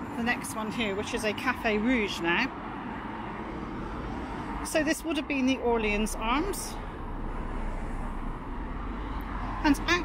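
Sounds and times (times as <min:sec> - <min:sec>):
road traffic passing: 0:00.0 - 0:10.0.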